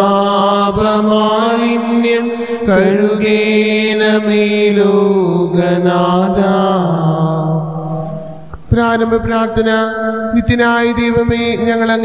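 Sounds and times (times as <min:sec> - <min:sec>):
devotional chanting voice: 0:00.0 - 0:12.0
steady drone: 0:00.0 - 0:12.0.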